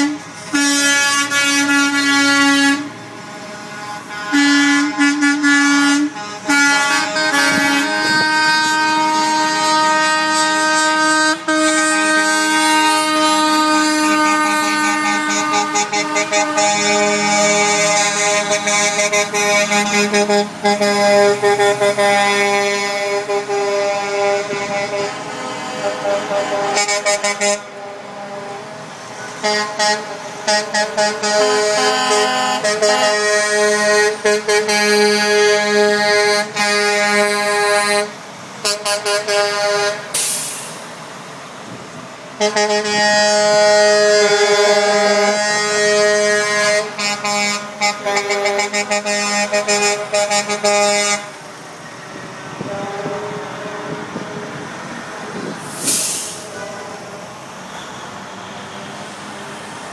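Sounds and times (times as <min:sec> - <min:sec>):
truck air horn blasts: 0:00.0 - 0:40.9, 0:42.3 - 0:59.3
truck engines driving past: 0:00.0 - 0:59.9.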